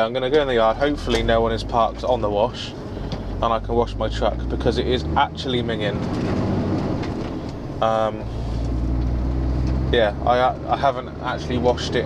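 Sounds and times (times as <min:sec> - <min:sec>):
lorry engine drone: 0:00.0 - 0:12.0
road and tyre noise: 0:00.0 - 0:12.0.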